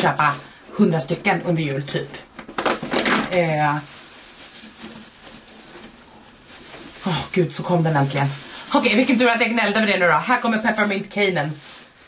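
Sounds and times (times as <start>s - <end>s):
shredded paper rustling: 3.2s - 12.0s.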